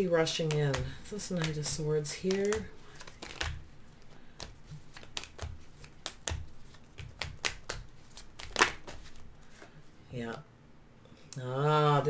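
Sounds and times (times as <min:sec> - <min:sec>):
cards being shuffled: 0:00.3 - 0:09.8.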